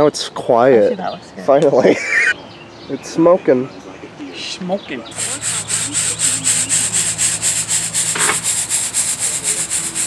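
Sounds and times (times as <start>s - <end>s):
fan electric hum: 0.9s - 10.0s.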